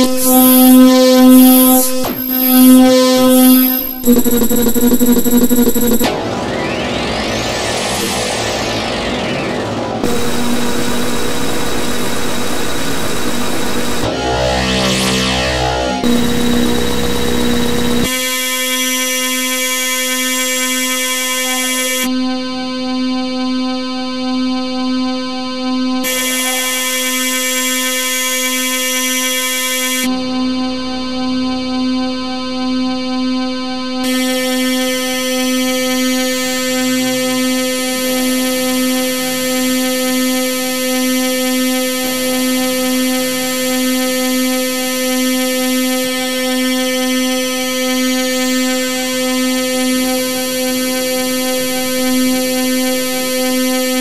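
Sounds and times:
sustained synthesized chord: 0.0s - 8.1s, 8.8s - 18.5s.

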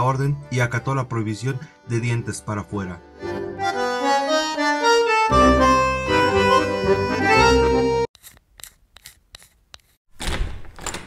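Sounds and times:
music: 0.0s - 8.1s.

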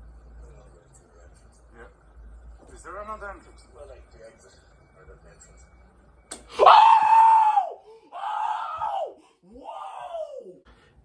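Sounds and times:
woman screaming: 6.6s - 10.6s.

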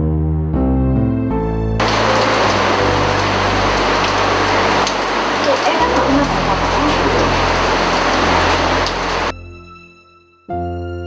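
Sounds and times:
heavy rain falling: 1.8s - 9.3s.

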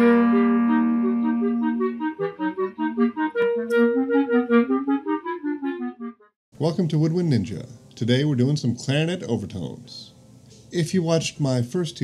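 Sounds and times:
clarinet music: 0.0s - 6.4s.

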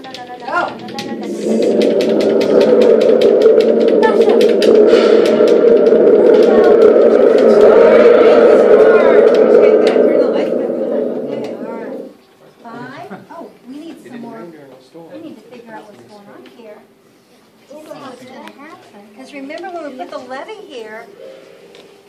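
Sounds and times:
children's voices: 3.8s - 5.3s, 6.1s - 12.1s.

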